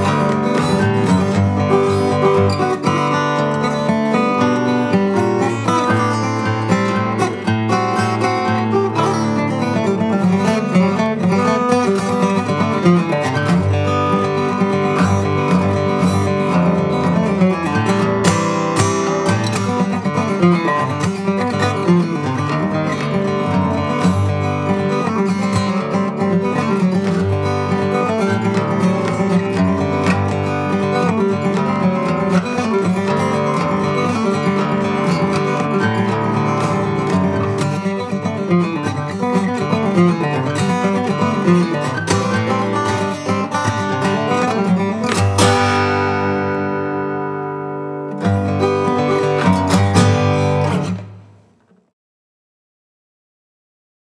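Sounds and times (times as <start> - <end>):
fingerstyle acoustic guitar piece: 0.0 - 51.9.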